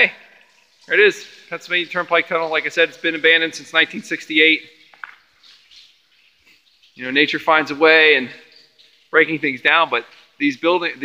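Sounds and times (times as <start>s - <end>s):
people talking: 0.0s - 0.2s, 0.9s - 4.7s, 7.0s - 8.4s, 9.1s - 11.0s
birds chirping faintly: 0.0s - 11.0s.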